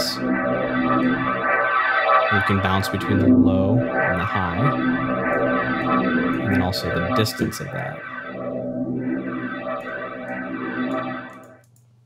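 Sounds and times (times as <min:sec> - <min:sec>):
swirling synth pad chord: 0:00.0 - 0:11.6.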